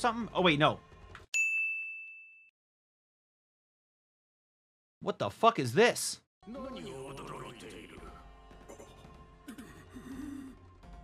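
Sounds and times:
bright bell-like ding: 1.4s - 2.5s.

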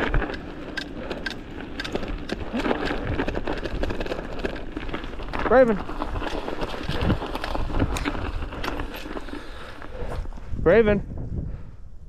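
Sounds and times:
bike tyres rumbling on dirt: 0.0s - 12.0s
wind on microphone: 5.9s - 12.0s.

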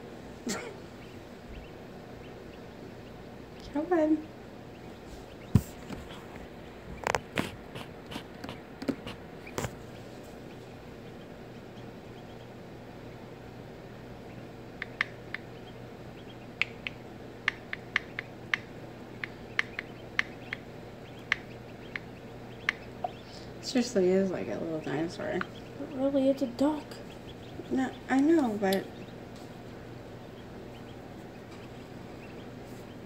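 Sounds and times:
steady low hum: 0.0s - 33.0s
duckling peeping: 0.4s - 33.0s
knocks and scrapes on eggshell: 5.1s - 10.4s.

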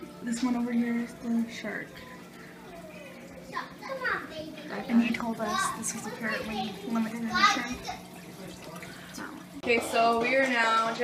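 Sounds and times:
children chattering: 0.0s - 10.8s.

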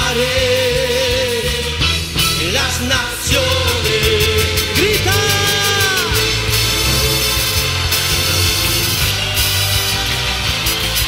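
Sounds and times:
steady bass: 0.0s - 11.0s
worship band instrumental music: 0.0s - 11.0s.

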